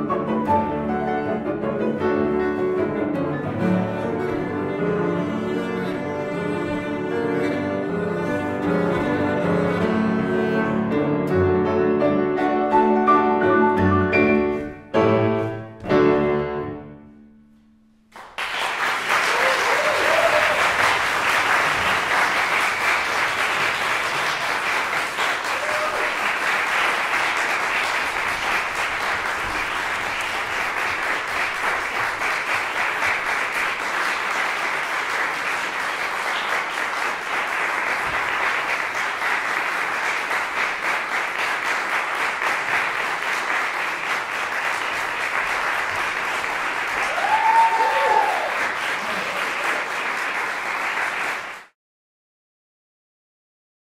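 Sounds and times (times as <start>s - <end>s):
audience applause: 18.1s - 51.8s.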